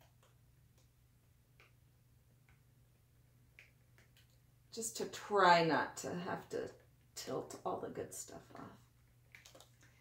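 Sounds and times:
faint irregular clicks: 0.0 - 4.5, 8.8 - 10.0.

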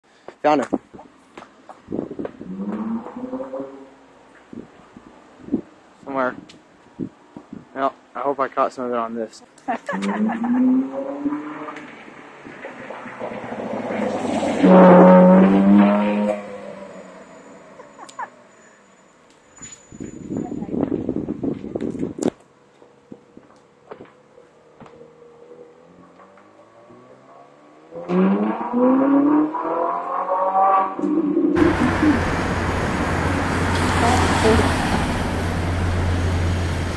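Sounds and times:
sports car engine driving past: 9.9 - 17.8, 24.9 - 36.9.

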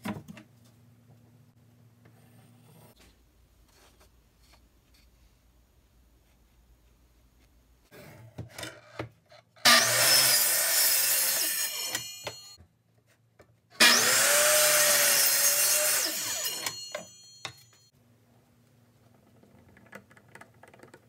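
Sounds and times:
electric miter saw cutting wood: 9.6 - 12.6, 13.8 - 17.1.

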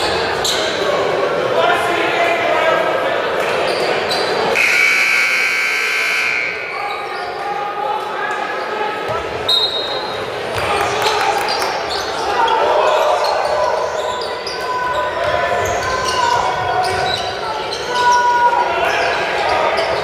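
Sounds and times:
crowd voices: 0.0 - 20.0.

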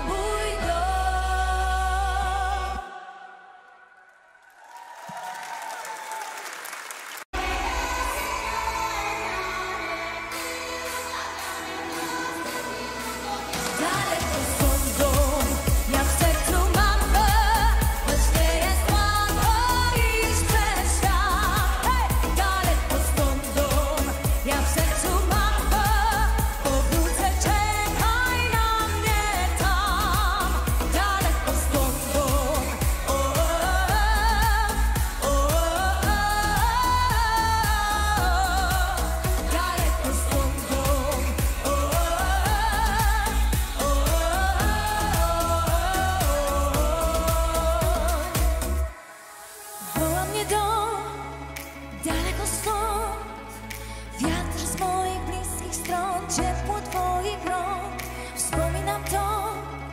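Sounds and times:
person singing with vibrato: 0.0 - 4.3, 7.4 - 59.9
heavy bass beat: 14.3 - 48.9.

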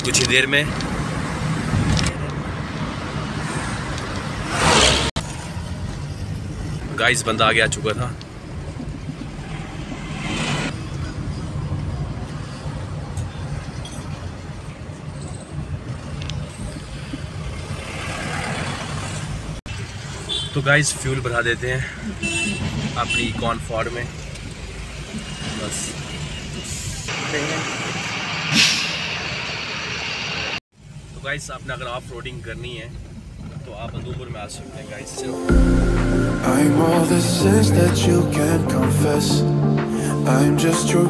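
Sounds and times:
car engine and tyres rumbling: 0.0 - 39.4
loud hiss of air: 27.8 - 30.5
brief hissing noise: 28.5 - 29.1.

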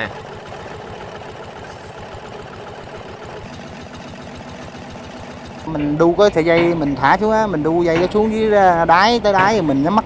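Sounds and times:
small boat engine running: 0.0 - 10.0.

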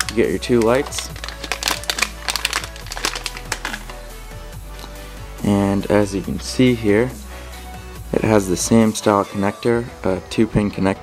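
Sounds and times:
plastic packet crinkling: 0.0 - 4.0
background music: 0.0 - 11.0.

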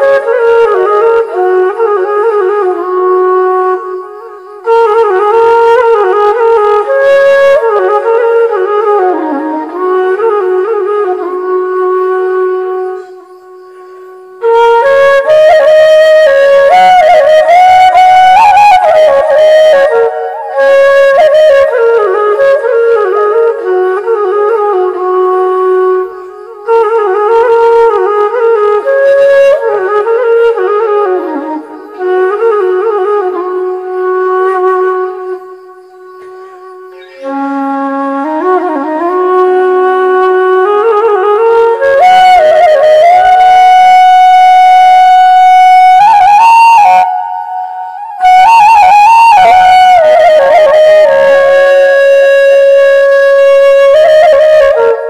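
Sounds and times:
flute melody: 0.0 - 55.0.

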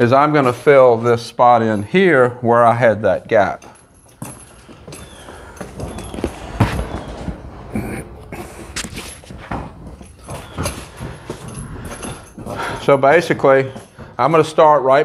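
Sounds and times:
footsteps: 3.0 - 15.0
handling knocks and rustles: 3.1 - 15.0.

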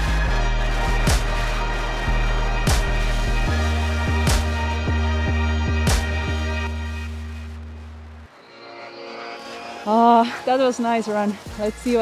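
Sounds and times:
held chord with deep bass: 0.0 - 7.6.

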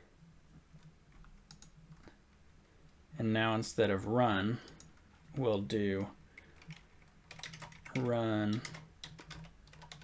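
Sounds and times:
low steady hum: 0.0 - 10.0
keyboard keystrokes: 6.6 - 10.0.

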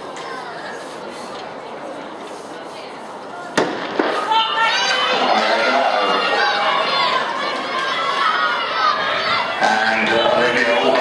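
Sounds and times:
murmur of crowd: 0.0 - 11.0
spectators shouting and cheering: 4.0 - 11.0.

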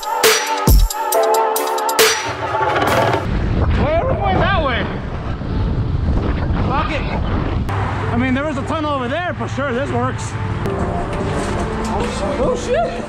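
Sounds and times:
wind buffeting microphone: 3.2 - 7.8.

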